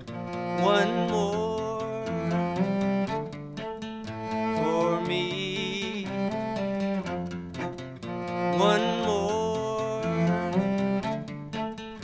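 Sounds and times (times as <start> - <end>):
acoustic guitar: 0.0 - 12.0
bowed cello: 0.0 - 12.0.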